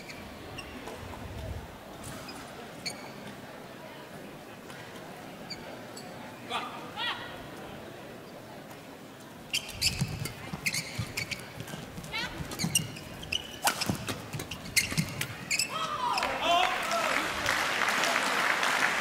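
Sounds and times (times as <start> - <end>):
shoes squeaking on court floor: 0.0 - 1.1, 2.0 - 3.4, 5.4 - 6.3, 9.3 - 16.4
racket striking shuttlecock: 13.6 - 14.2
crowd cheering and applauding: 16.1 - 19.0.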